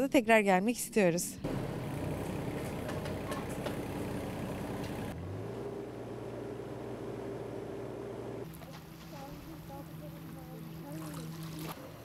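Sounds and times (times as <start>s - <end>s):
mechanical hum with engine drone: 1.4s - 12.0s
smooth steady hum: 1.4s - 12.0s.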